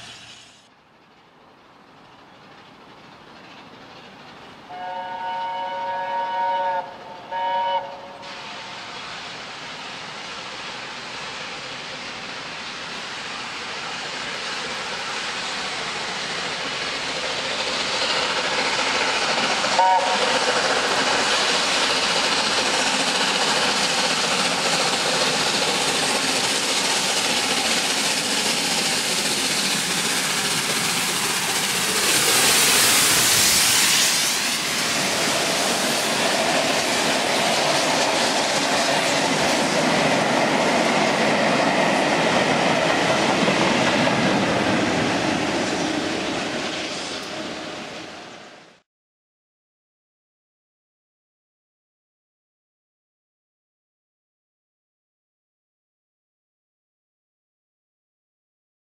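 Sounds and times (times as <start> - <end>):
steam locomotive running through: 0.0 - 48.8.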